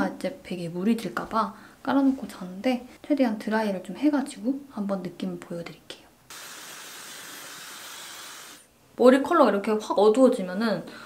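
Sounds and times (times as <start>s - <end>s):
hair dryer blowing air: 6.3s - 8.7s.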